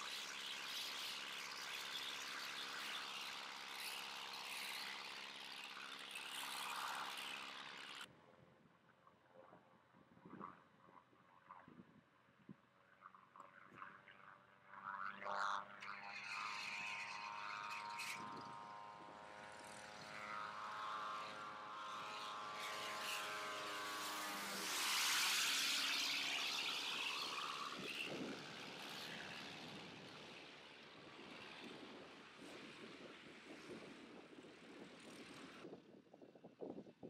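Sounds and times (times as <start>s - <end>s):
propeller aircraft flying past: 0.0s - 37.0s.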